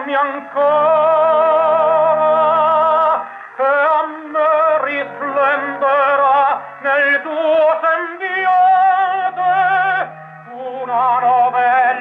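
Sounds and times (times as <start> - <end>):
man singing with vibrato: 0.0 - 12.0
sustained accompaniment: 0.0 - 12.0.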